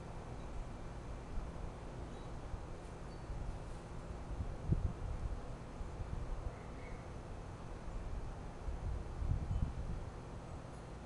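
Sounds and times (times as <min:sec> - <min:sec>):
wind buffeting microphone: 0:04.3 - 0:05.4, 0:08.8 - 0:10.1.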